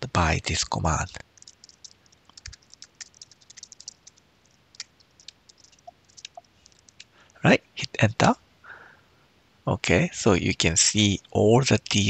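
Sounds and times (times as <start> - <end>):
typing on a computer keyboard: 1.1 - 7.2.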